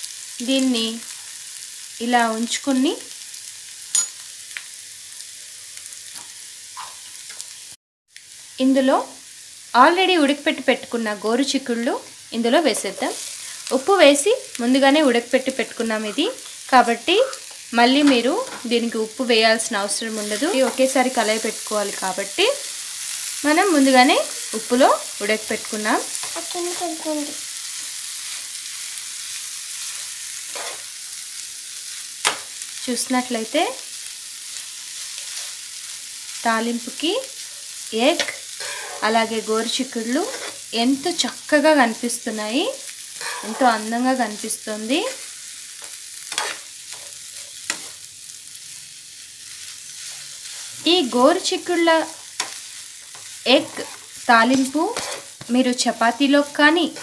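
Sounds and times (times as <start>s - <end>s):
food sizzling in a pan: 0.0s - 57.0s
spoon scraping a pan: 29.8s - 30.9s, 35.0s - 35.6s, 38.1s - 39.4s, 40.2s - 40.7s, 43.2s - 43.9s, 45.1s - 48.1s, 52.2s - 55.6s.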